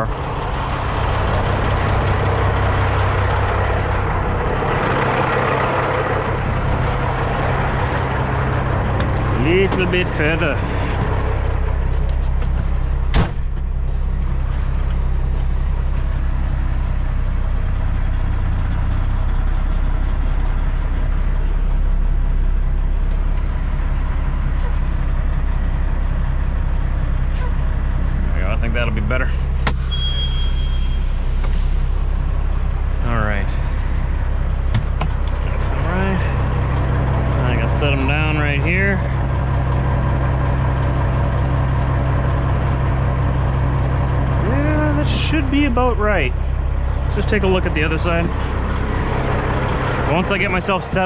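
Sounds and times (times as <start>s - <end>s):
truck diesel engine running: 0.0s - 51.0s
cab door slamming: 13.1s - 13.7s.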